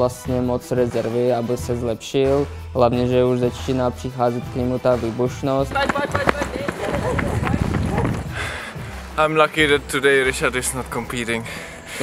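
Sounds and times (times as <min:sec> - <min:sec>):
running footsteps thumps and scuffs: 0:05.3 - 0:09.0.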